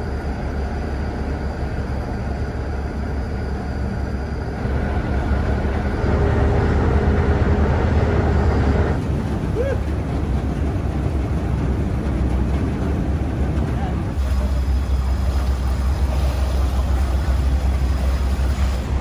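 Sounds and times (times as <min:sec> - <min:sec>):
churning propeller wash: 0:00.0 - 0:19.0
ship engines rumbling: 0:00.0 - 0:19.0.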